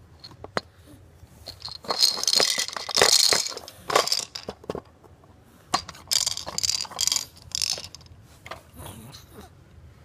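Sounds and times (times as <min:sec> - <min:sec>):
baby rattling and clattering objects: 0:01.4 - 0:05.0, 0:05.7 - 0:08.2.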